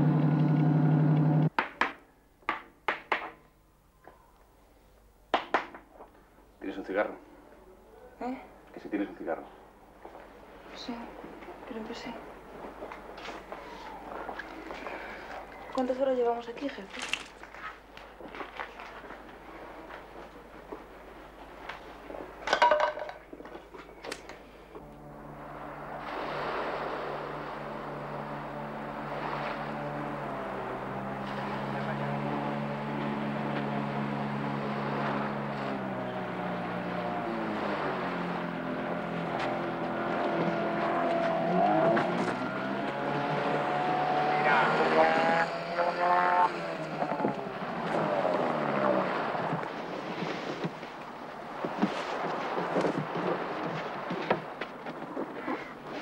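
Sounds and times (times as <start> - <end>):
outboard motor running: 0.0 - 1.5, 24.8 - 54.5.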